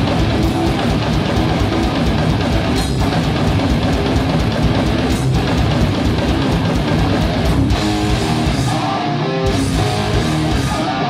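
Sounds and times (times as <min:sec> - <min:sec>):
distorted electric guitar riffing: 0:00.0 - 0:11.0
fast drums: 0:00.0 - 0:11.0.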